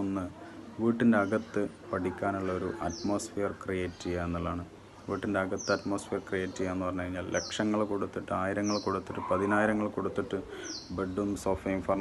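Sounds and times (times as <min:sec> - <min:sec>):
bird chirping: 0:00.0 - 0:12.0
man talking: 0:00.0 - 0:12.0.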